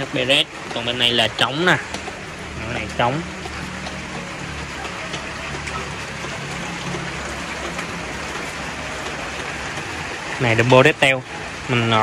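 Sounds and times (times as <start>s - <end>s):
drip ticks: 0.0s - 11.4s
rain on a roof: 0.0s - 12.0s.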